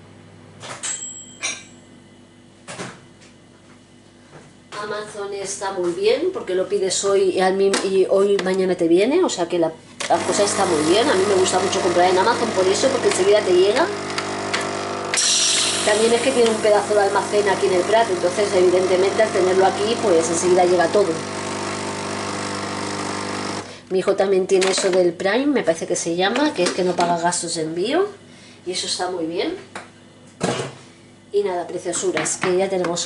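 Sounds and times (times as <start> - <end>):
appliance humming: 2.5 - 33.0
coffee machine pump humming: 10.0 - 23.8
loud hiss of coffee flowing: 10.2 - 23.8
coffee machine clicks: 11.5 - 16.8.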